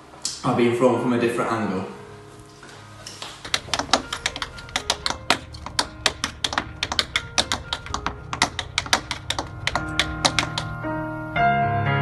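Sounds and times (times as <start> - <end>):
tap shoes on wooden board: 3.4 - 10.8.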